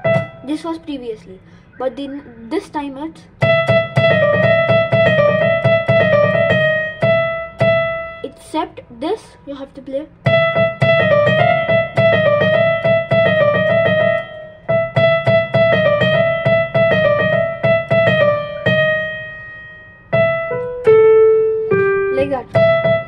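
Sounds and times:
electronic keyboard piano melody: 0.0 - 2.3, 3.3 - 8.5, 10.1 - 23.0.

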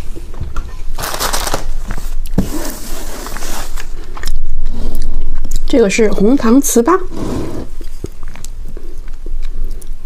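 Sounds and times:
person chewing: 3.8 - 5.7, 7.6 - 10.0.

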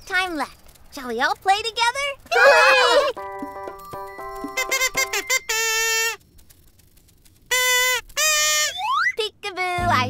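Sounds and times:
quick musical notes: 3.1 - 6.2
toy horn blasts: 4.4 - 6.2, 7.5 - 8.8.

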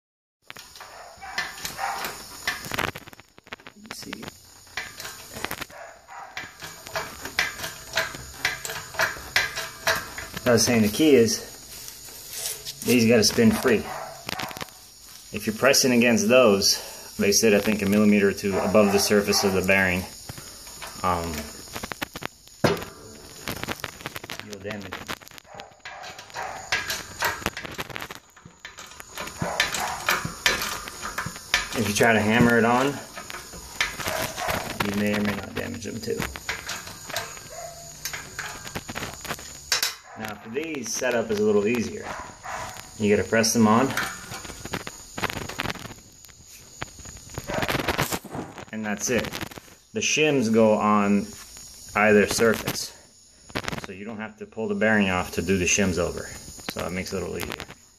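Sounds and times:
metal parts clicking and scraping: 0.5 - 49.8.

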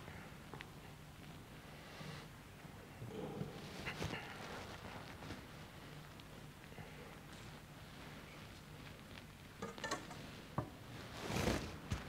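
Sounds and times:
small clicks and knocks: 9.6 - 10.7.

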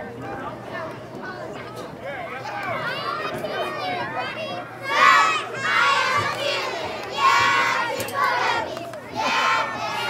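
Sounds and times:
children shouting together: 2.4 - 10.0.

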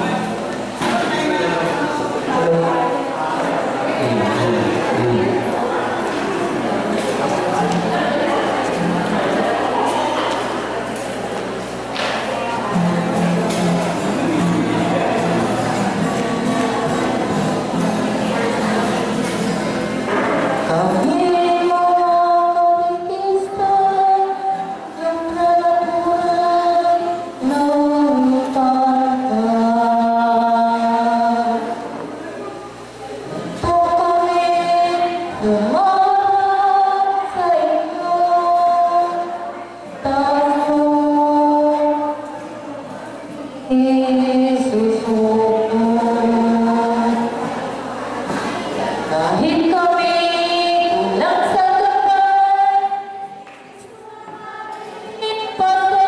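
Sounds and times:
women singing in unison: 20.6 - 31.8, 33.6 - 42.3, 43.7 - 47.5, 49.1 - 53.4, 54.0 - 56.0.

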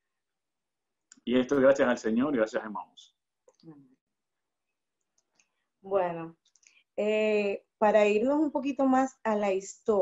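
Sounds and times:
man speaking: 1.2 - 3.1.

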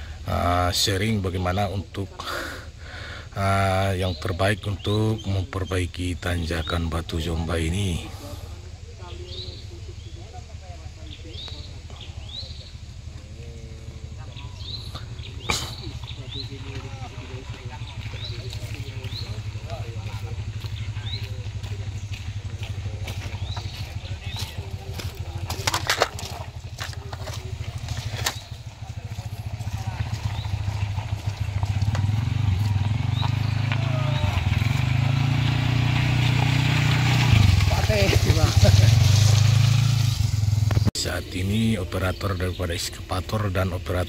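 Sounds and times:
motorcycle engine running: 0.0 - 44.0
voices talking: 0.0 - 44.0.

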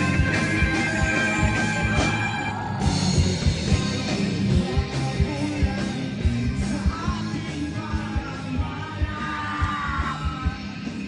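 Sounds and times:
live rock band playing: 0.0 - 11.0
steady drum beat: 0.0 - 11.0
singer yelling into microphone: 6.9 - 10.6.

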